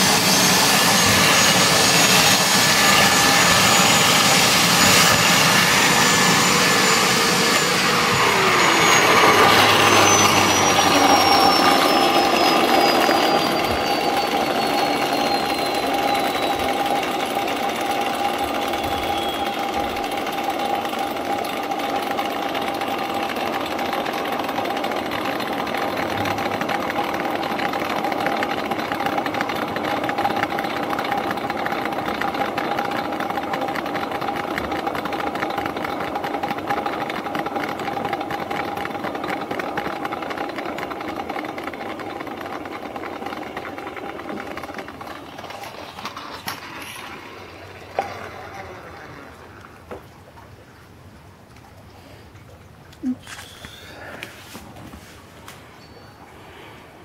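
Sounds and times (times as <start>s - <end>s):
high whine falling in pitch: 0.0s - 22.9s
floor polisher brushes humming: 0.0s - 50.1s, 53.0s - 57.0s.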